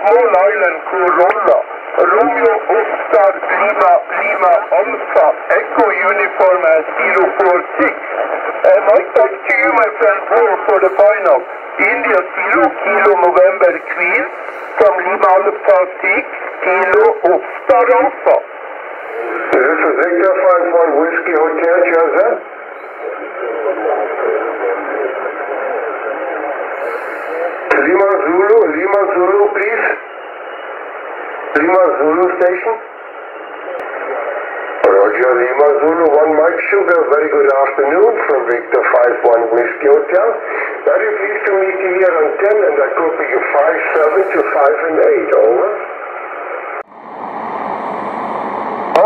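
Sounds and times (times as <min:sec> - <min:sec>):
voices over radio: 0:00.0 - 0:46.9
radio band hiss: 0:00.0 - 0:49.0.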